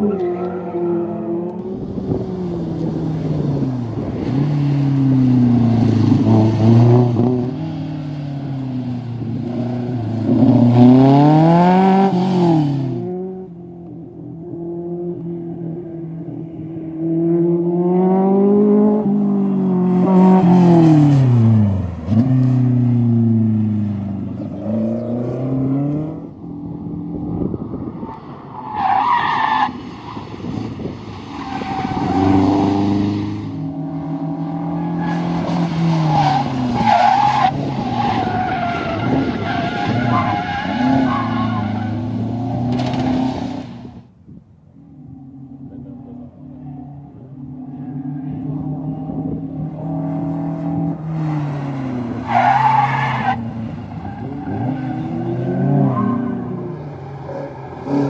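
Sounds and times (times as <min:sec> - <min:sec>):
sports car engines revving: 0:00.0 - 0:29.5, 0:30.2 - 0:44.0, 0:44.9 - 0:58.0.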